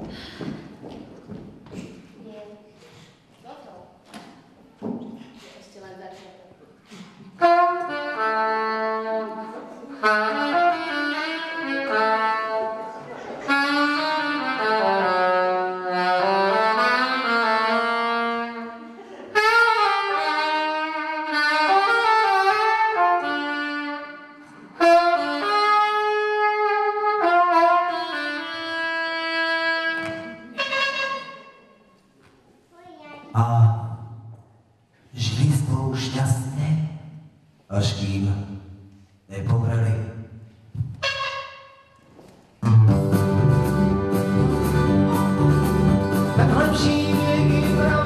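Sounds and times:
saxophone solo: 0:07.4 - 0:31.9, 0:40.8 - 0:48.0.

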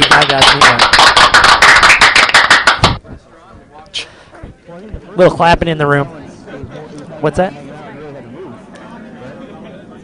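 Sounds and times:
hand clapping: 0:00.0 - 0:03.0.

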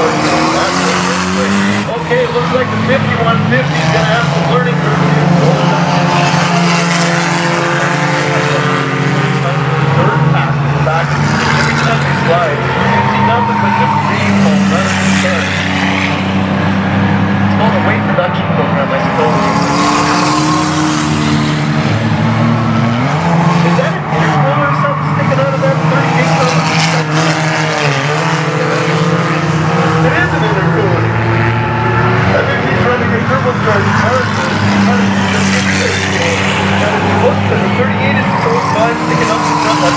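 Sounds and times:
cars passing by: 0:00.0 - 0:39.9
racing car engines: 0:00.0 - 0:39.9.

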